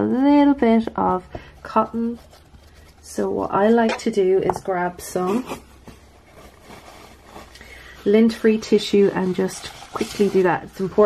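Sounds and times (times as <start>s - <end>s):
tissue rustling: 4.8s - 11.0s.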